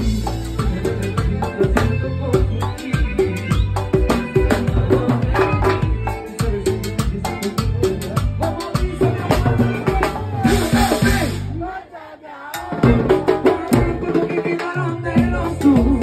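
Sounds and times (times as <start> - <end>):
drum kit: 0.0 - 11.8, 12.4 - 16.0
band playing latin dance music: 0.0 - 16.0
congas: 0.0 - 16.0.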